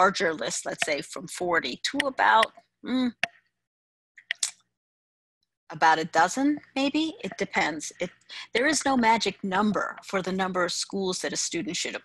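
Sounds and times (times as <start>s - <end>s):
mouth click: 4.2s - 4.6s.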